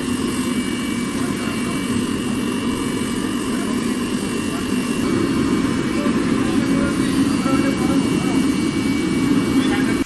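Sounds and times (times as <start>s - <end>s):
furnace flame roaring: 0.0s - 10.0s.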